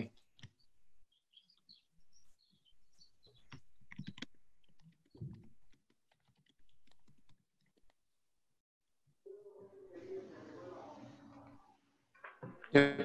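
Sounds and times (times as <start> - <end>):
typing on computer keyboard: 3.5 - 8.0.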